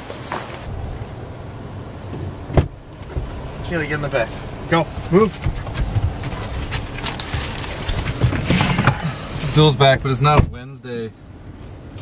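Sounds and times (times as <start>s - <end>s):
rustling and knocking: 2.1s - 9.6s.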